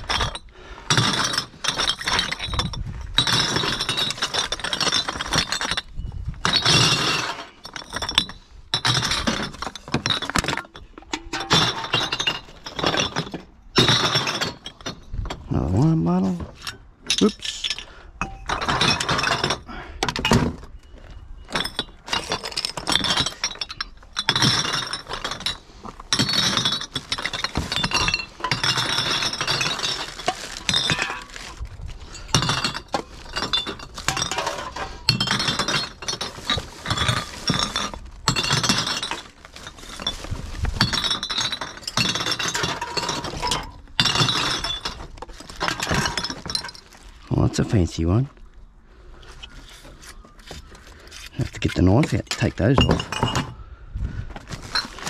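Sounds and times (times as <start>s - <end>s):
bottles and cans clattering: 0.0s - 15.7s, 16.5s - 48.0s, 49.3s - 55.0s
rummaging through rubbish: 0.0s - 48.4s, 49.2s - 55.0s.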